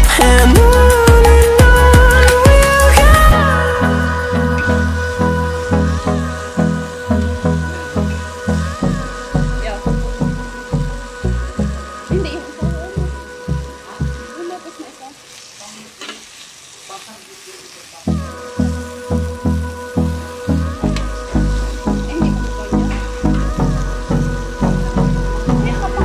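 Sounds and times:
background music with steady beat: 0.0 - 14.7, 18.1 - 26.0
meat sizzling on a grill pan: 0.0 - 26.0
metal tongs turning meat: 15.3 - 18.0.

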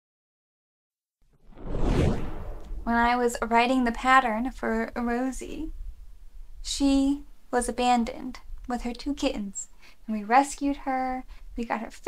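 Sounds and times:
whooshing rush: 1.4 - 3.2
woman speaking: 2.9 - 5.7, 6.7 - 12.0.

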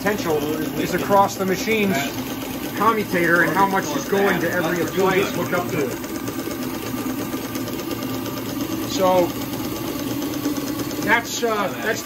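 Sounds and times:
steam engine and dynamo running: 0.0 - 12.0.

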